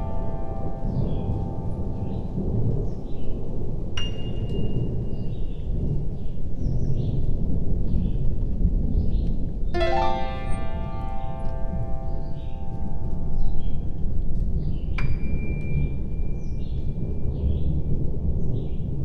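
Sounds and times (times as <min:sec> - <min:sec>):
harp-like chord: 0:00.0 - 0:02.7, 0:09.8 - 0:14.7
faint high notes: 0:00.0 - 0:03.2, 0:09.8 - 0:16.4
thunderstorm rumble with rain: 0:00.0 - 0:09.7, 0:10.6 - 0:19.0.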